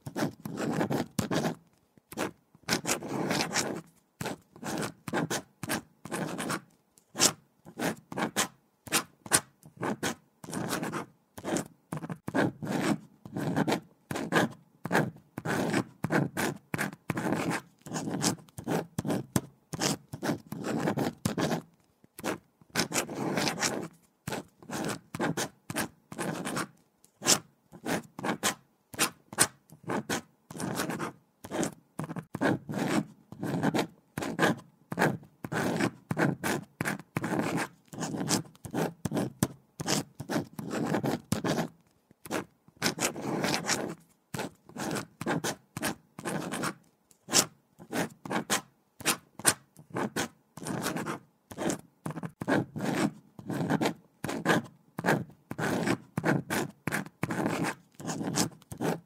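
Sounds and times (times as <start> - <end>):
pen scratching on paper: 0.0 - 59.0.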